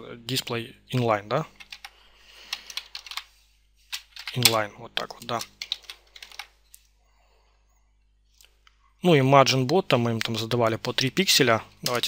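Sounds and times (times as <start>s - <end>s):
computer keyboard typing: 1.6s - 1.9s, 2.5s - 3.3s, 3.9s - 6.5s.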